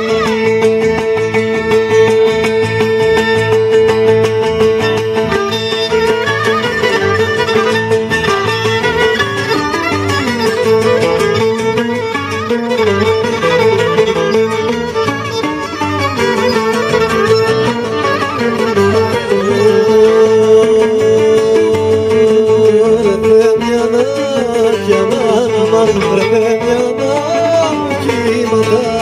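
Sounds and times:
lutes strummed in rhythm: 0.0s - 29.0s
violin melody: 0.0s - 29.0s.

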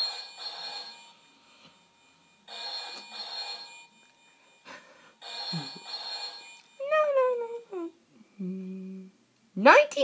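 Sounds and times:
electronic telephone ring: 0.0s - 6.9s.

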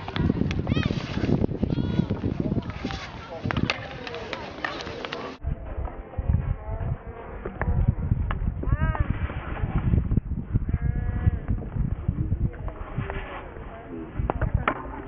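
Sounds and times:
wind rumbling on microphone: 0.0s - 4.4s, 5.4s - 15.0s
hockey stick hitting ball: 2.6s - 5.3s, 14.2s - 15.0s.

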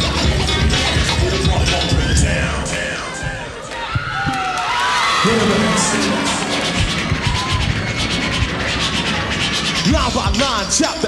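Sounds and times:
rapping: 0.0s - 3.5s, 9.8s - 11.0s
hip hop beat: 0.0s - 4.4s, 5.2s - 11.0s
crowd cheering: 1.7s - 10.4s.

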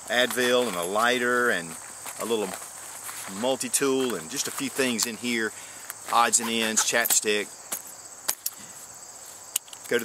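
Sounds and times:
crickets trilling: 0.0s - 10.0s.

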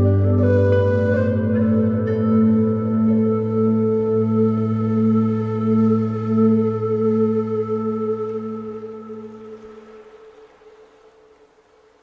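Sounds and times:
faint hiss: 3.4s - 12.0s.

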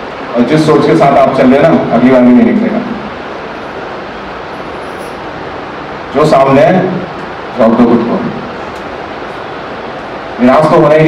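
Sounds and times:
room noise hiss and rumble: 0.0s - 11.0s.

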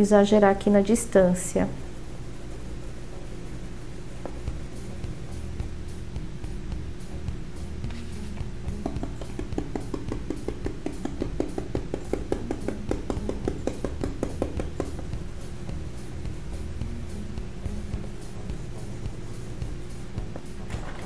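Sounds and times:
paintbrush tapping on stencil: 8.7s - 15.2s.

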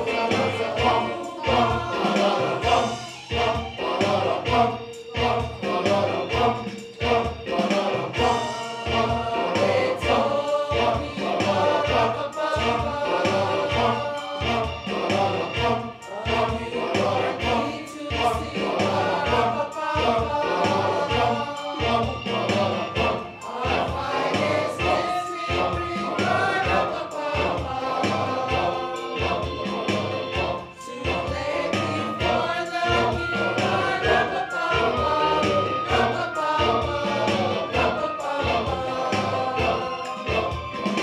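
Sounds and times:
choir singing in harmony: 0.0s - 41.0s
low rhythmic pulse: 0.0s - 41.0s.

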